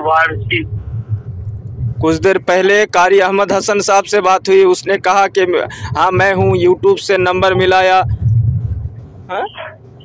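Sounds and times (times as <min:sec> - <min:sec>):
man speaking over phone: 0:00.0 - 0:00.7
low rumbling phone line noise: 0:00.0 - 0:10.0.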